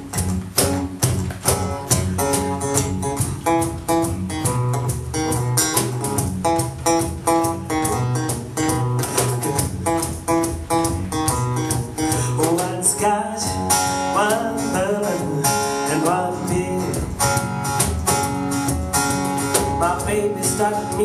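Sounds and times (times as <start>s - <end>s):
acoustic guitar strumming: 0.0s - 21.0s
cajon beat: 0.0s - 21.0s
person singing wordlessly: 12.1s - 17.3s, 19.7s - 21.0s.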